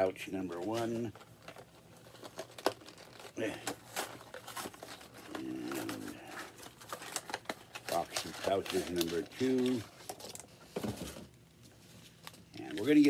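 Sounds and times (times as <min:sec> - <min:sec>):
packaging crinkling and rustling: 0:00.0 - 0:13.0.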